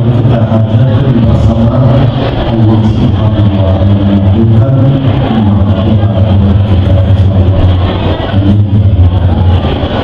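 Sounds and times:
elderly man chanting into microphone: 0.0 - 9.4.

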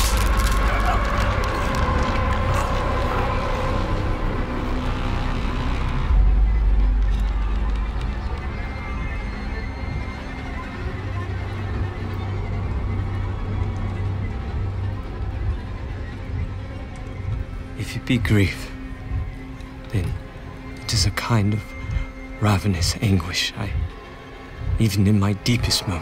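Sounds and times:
low droning tones: 0.0 - 26.0.

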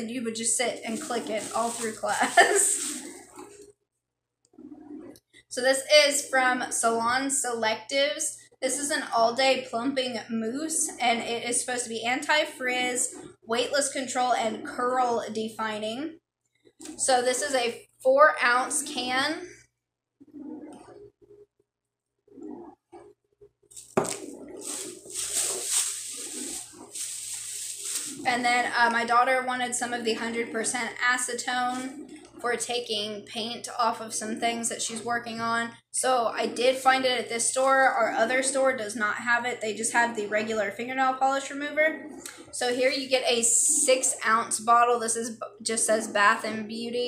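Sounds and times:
plastic bag rustling: 0.4 - 3.7, 23.7 - 29.1
woman laughing: 2.1 - 3.0.

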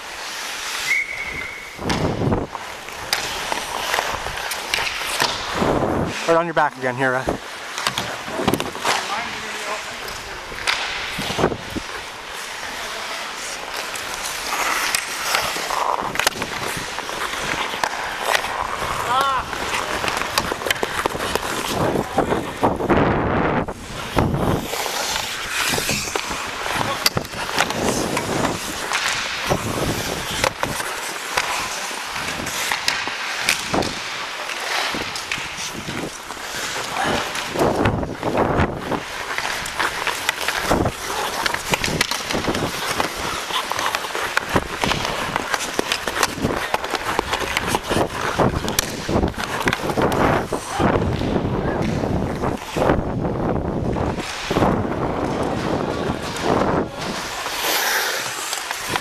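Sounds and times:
hockey sticks and puck clacking: 0.0 - 59.0
skate blades scraping ice: 0.0 - 59.0.

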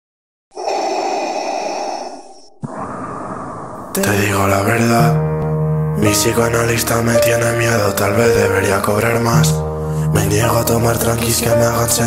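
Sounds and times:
dense noisy sustained sound: 0.6 - 4.1.

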